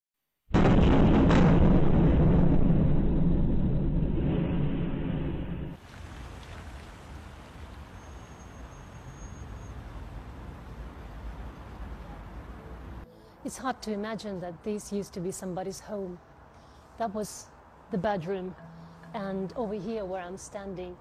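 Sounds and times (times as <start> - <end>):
explosion rumble: 0.5 - 5.8
outdoor background noise: 2.2 - 21.0.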